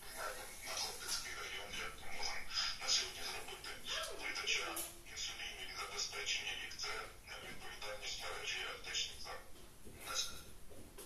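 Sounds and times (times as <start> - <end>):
speech: 0.0 - 10.4.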